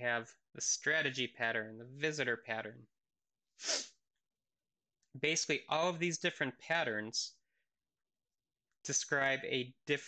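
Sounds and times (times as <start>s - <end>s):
man's noisy breath burst: 3.6s - 3.9s.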